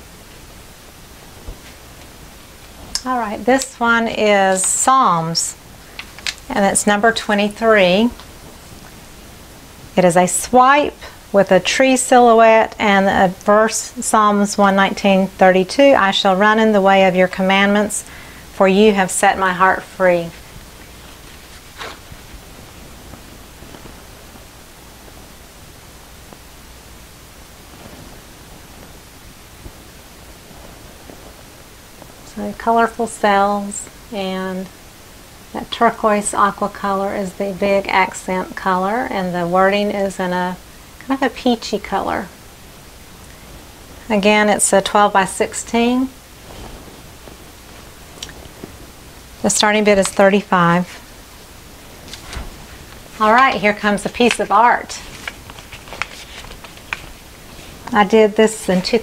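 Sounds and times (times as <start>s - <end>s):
room and microphone hiss: 0.0s - 59.0s
faint rustle: 20.2s - 25.4s, 27.5s - 32.4s, 46.2s - 49.5s, 50.9s - 58.0s.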